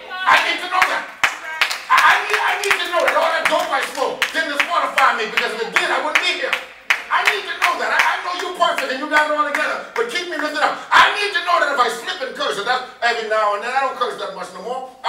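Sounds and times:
people's voices: 0.0s - 14.8s
congregation clapping: 0.3s - 10.6s.

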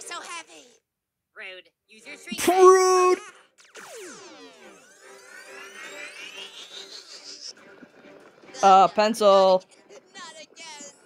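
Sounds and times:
synthetic ray-gun sweeps: 3.6s - 6.4s.

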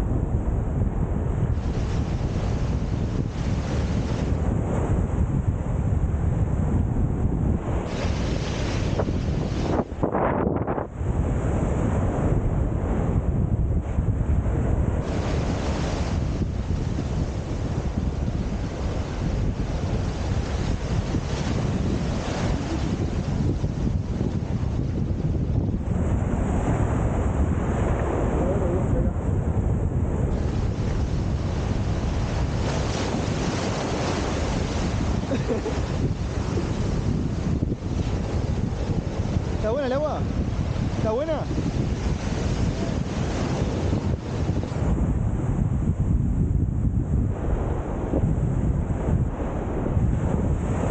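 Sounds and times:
wind rumble on microphone: 0.0s - 50.9s
small waves washing over sand: 1.2s - 6.7s, 7.6s - 10.2s, 13.8s - 29.4s, 30.0s - 45.2s.

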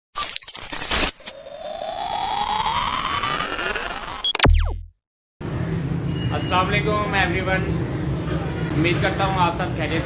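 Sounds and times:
synthetic riser: 0.2s - 5.0s
sharp hit with low boom: 4.2s - 5.0s.

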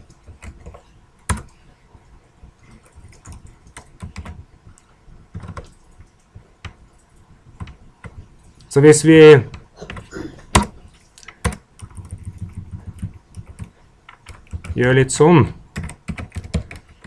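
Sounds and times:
computer keyboard keystrokes: 0.0s - 1.6s, 2.6s - 7.0s, 9.5s - 14.8s, 15.7s - 17.0s.

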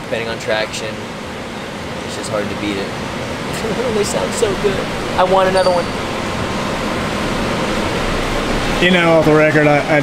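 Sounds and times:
car engine idling: 3.2s - 9.5s.

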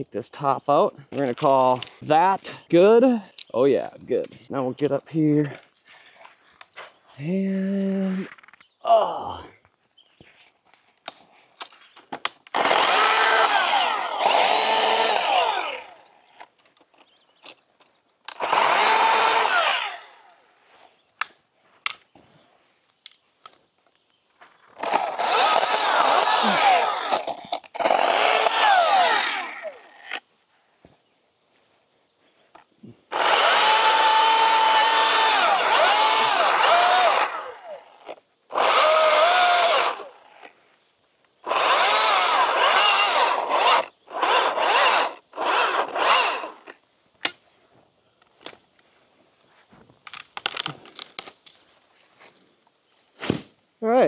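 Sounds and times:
chainsaw cutting: 12.5s - 16.1s, 18.3s - 20.4s, 24.7s - 30.2s, 33.1s - 40.4s, 41.4s - 46.8s.

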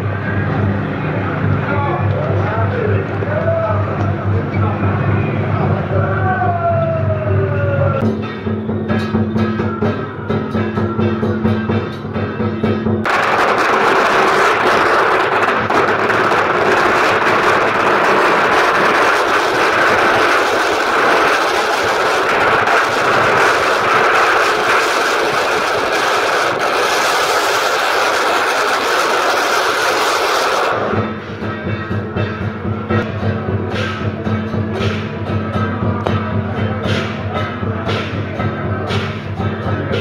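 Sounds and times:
procession music with drums: 8.0s - 13.1s, 31.0s - 40.0s
firecrackers crackling: 13.0s - 32.4s.

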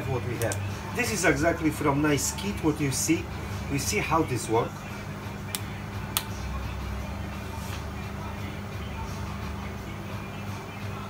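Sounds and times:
gas burner humming: 0.0s - 11.0s.

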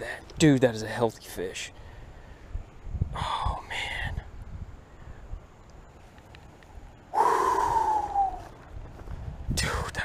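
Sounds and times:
man sighing loudly: 7.1s - 8.4s.

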